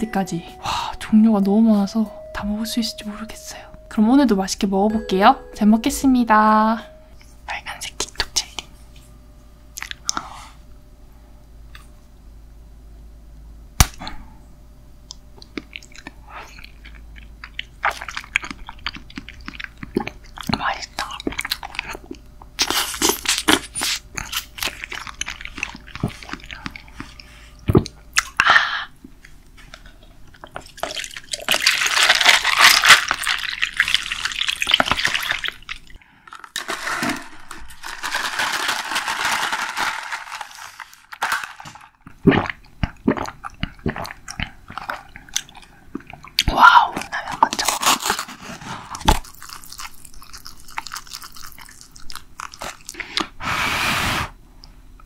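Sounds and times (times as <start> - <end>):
crunching and chewing: 9.8 - 10.3, 15.1 - 53.4.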